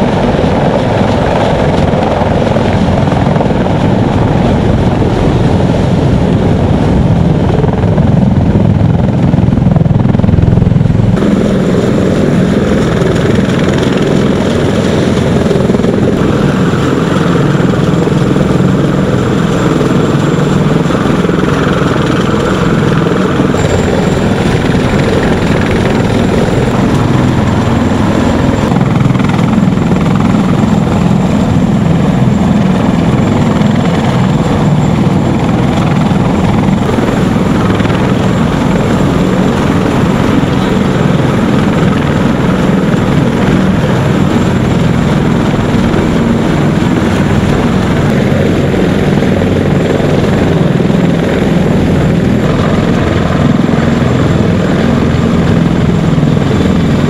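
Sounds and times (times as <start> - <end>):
helicopter rotor thrum: 0.0 - 57.0
high turbine whine: 0.0 - 57.0.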